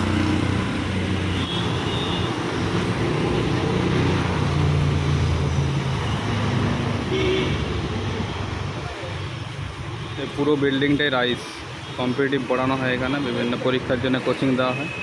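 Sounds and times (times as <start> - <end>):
road traffic passing: 0.0 - 15.0.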